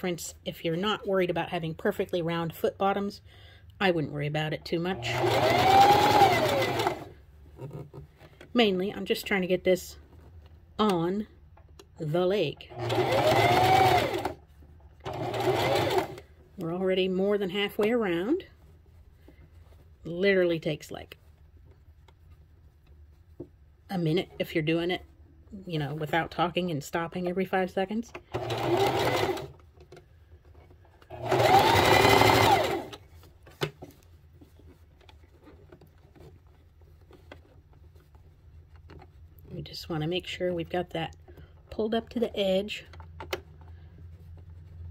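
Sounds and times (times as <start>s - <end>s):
sewing machine stitching: 4.8s - 7.9s, 12.7s - 14.4s, 15.0s - 16.3s, 28.2s - 29.6s, 31.0s - 33.1s.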